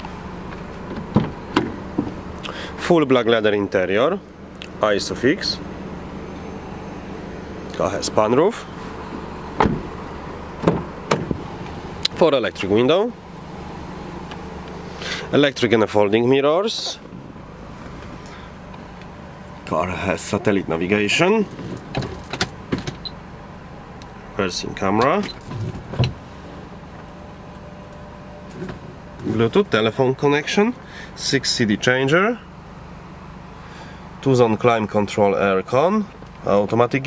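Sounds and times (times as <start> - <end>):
car doors shutting: 0.0 - 2.7, 8.8 - 12.2, 21.2 - 23.2, 24.9 - 27.1, 27.9 - 29.6
car engine idling: 0.0 - 37.0.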